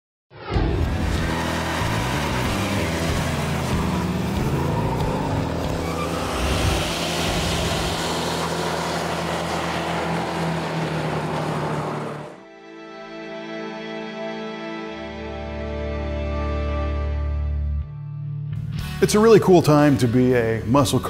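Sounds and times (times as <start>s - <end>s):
car engine revving: 0.5s - 12.5s.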